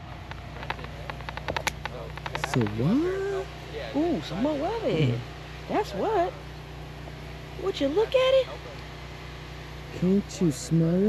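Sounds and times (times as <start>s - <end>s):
small irregular clicks and crackles: 0.0s - 2.9s
steady low hum: 0.0s - 11.0s.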